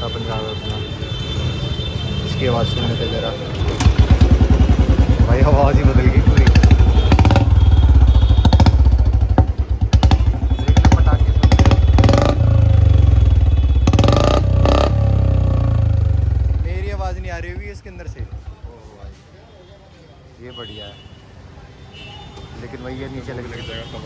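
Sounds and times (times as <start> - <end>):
motorcycle engine revving: 3.5 - 18.8.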